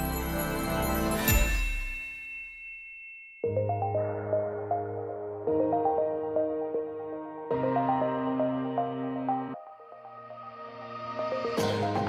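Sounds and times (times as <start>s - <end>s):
bright chime: 0.0s - 4.5s.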